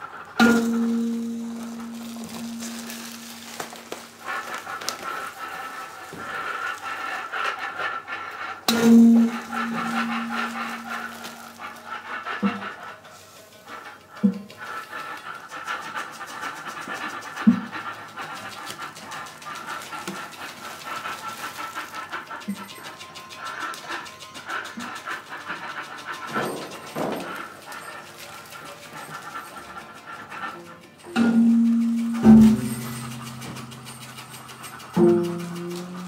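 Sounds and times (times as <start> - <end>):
loud low sustained note: 8.7 - 11.7.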